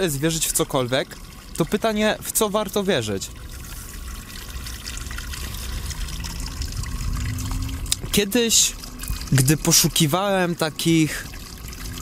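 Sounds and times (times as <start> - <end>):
trickling water: 0.0 - 12.0.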